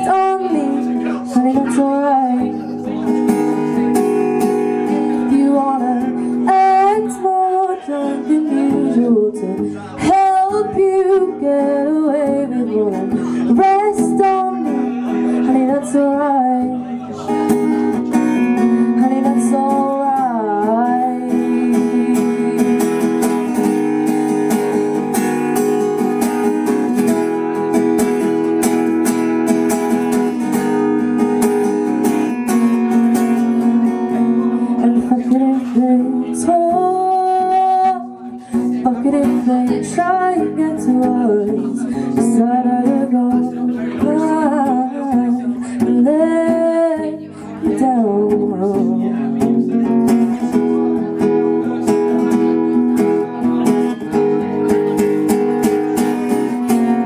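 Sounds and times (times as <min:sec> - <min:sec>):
woman singing with vibrato: 0:00.0 - 0:02.7, 0:04.8 - 0:17.0, 0:18.4 - 0:24.0, 0:34.6 - 0:49.3
strummed acoustic guitar: 0:00.0 - 0:57.0.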